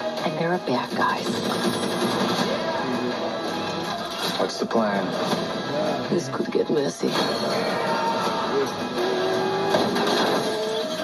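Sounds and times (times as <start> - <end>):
trailer music: 0.0 - 11.0.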